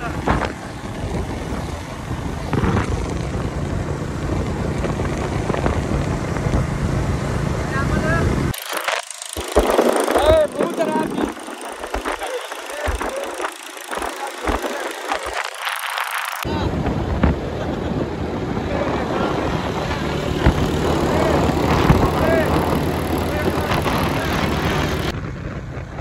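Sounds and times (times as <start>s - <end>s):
vehicle engine running: 0.0s - 26.0s
wind rushing over microphone: 0.0s - 26.0s
people's voices: 9.9s - 25.1s.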